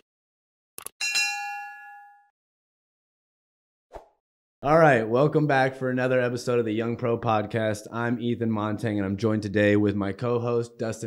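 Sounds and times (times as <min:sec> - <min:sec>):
notification bell ding: 0:01.0 - 0:02.3.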